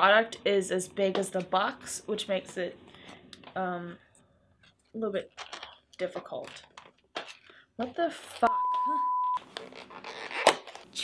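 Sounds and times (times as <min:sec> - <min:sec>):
electronic censor bleep: 0:08.5 - 0:09.4.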